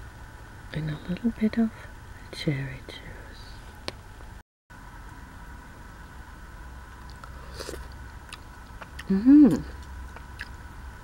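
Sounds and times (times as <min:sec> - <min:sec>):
recording hiss and hum: 0:00.0 - 0:11.0.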